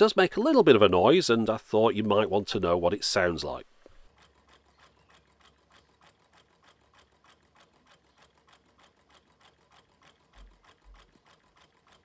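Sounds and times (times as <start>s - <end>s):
engine rapid ticking: 0.0s - 12.0s.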